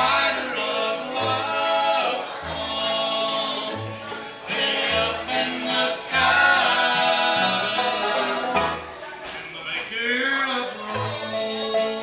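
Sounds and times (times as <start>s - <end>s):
upright bass notes: 0.0s - 9.1s, 10.2s - 12.0s
acoustic guitar: 0.0s - 12.0s
banjo: 0.0s - 12.0s
harmony vocals: 0.0s - 12.0s
mandolin: 0.0s - 12.0s.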